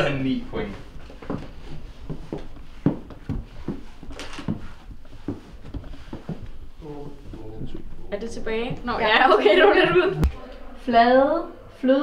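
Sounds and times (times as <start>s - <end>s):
footsteps on wooden floorboards: 0.6s - 9.0s.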